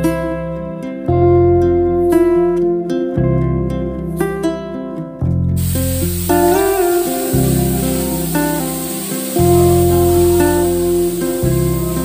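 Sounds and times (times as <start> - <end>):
background music with deep bass: 0.0 - 12.0
spray gun hissing: 5.6 - 12.0.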